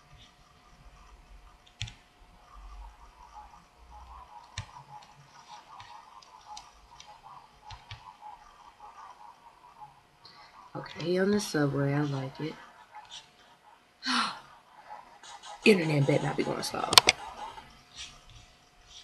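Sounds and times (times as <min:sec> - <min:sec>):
faint steady hum: 0:00.0 - 0:19.0
mouse and keyboard clicks: 0:01.6 - 0:02.0, 0:04.0 - 0:09.1, 0:16.9 - 0:19.0.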